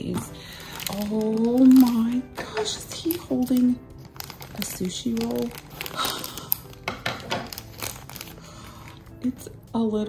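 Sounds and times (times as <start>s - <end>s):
plastic bag crinkling: 0.0s - 9.6s.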